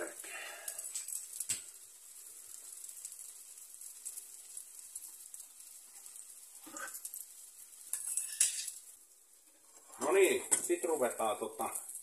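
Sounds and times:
cheese sizzling in oil: 0:00.0 - 0:12.0
light crackles: 0:00.0 - 0:12.0.

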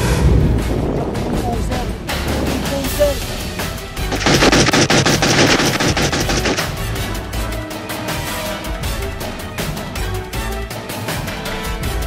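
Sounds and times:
background music: 0:00.0 - 0:12.0
rapid gunfire burst: 0:04.0 - 0:07.3.

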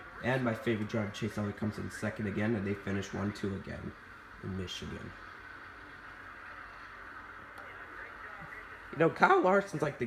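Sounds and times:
television race broadcast: 0:00.0 - 0:10.0.

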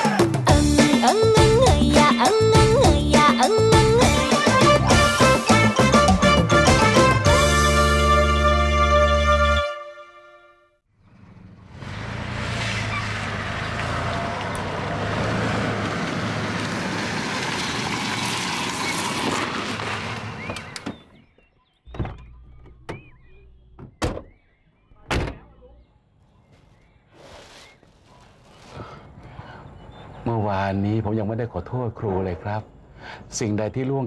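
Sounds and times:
pickup truck engine rumbling: 0:10.9 - 0:20.9
car doors thunking: 0:21.9 - 0:24.4.

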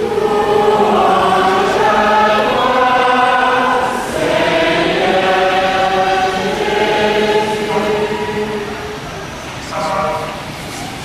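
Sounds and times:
choir singing long held notes: 0:00.0 - 0:10.8.

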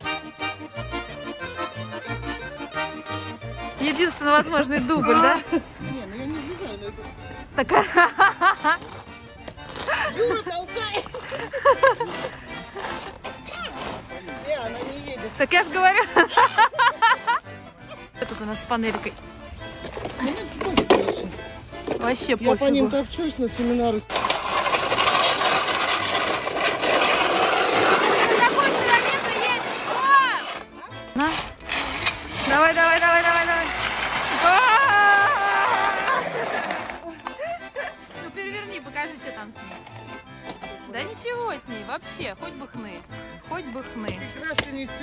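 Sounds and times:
background music: 0:00.0 - 0:45.0
people laughing: 0:04.6 - 0:06.0, 0:07.6 - 0:09.0, 0:09.8 - 0:13.1, 0:15.6 - 0:18.2, 0:34.4 - 0:38.3
panel scraping over icy asphalt: 0:09.6 - 0:17.2, 0:23.6 - 0:37.5
people calling out: 0:34.4 - 0:36.8.

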